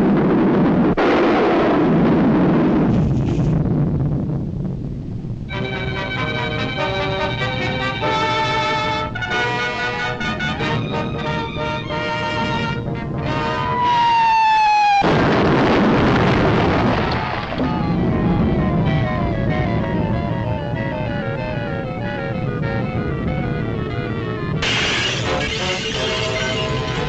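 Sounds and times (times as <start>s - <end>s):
explosion-like crash: 0.1s - 4.2s, 15.0s - 20.9s, 24.6s - 27.0s
orchestral cartoon music: 5.5s - 13.9s, 17.6s - 27.0s.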